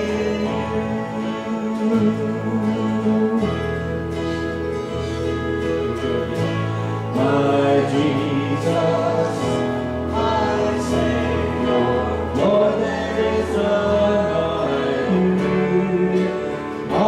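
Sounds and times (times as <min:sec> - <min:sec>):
voices singing: 0:00.0 - 0:04.7, 0:05.3 - 0:17.0
worship band playing slow song: 0:00.0 - 0:17.0.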